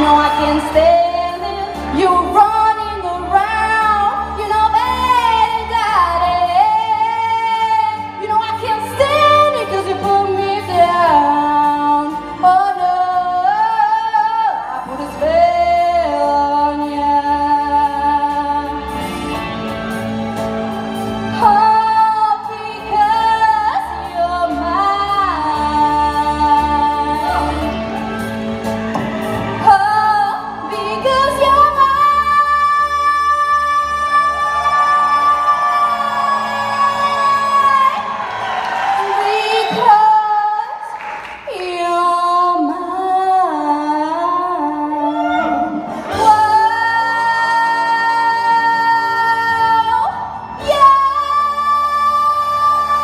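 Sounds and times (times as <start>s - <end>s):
woman singing into microphone: 0.0s - 19.1s, 21.3s - 27.8s, 29.4s - 53.0s
backing music: 0.0s - 53.0s.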